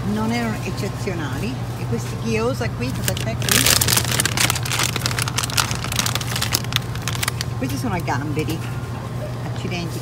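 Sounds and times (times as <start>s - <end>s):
freezer cases humming: 2.2s - 9.1s
plastic packaging crinkling: 2.9s - 7.7s.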